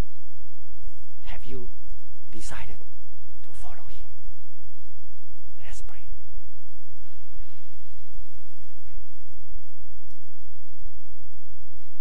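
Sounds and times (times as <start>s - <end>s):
steady low hum: 0.0s - 12.0s
man whispering: 1.2s - 4.2s, 5.6s - 6.3s.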